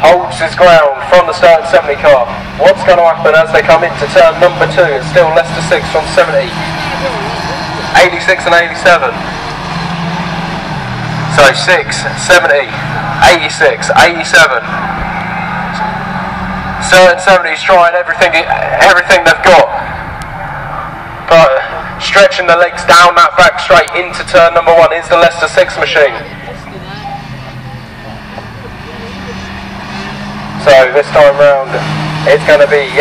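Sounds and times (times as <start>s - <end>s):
man speaking: 0.0s - 9.3s, 11.3s - 14.7s, 16.8s - 19.8s, 21.3s - 26.7s, 30.6s - 33.0s
racing car engines droning: 0.0s - 33.0s.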